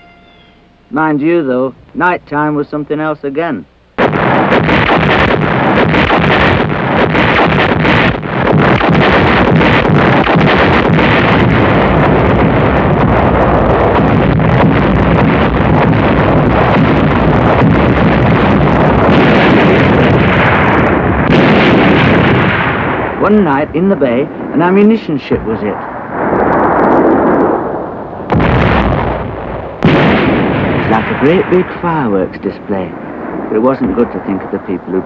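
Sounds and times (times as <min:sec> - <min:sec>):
explosions and artillery fire: 0:04.0 - 0:35.0.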